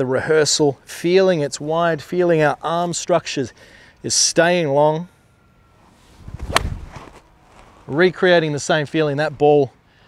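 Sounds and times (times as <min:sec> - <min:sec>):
golf club swing whoosh: 0:05.8 - 0:07.8
golf club striking ball: 0:06.4 - 0:07.2.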